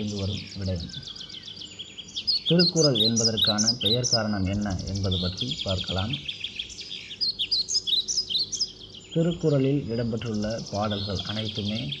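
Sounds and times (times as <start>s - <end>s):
man speaking: 0.0s - 1.0s, 2.5s - 6.2s, 9.2s - 12.0s
small birds chirping: 0.0s - 12.0s.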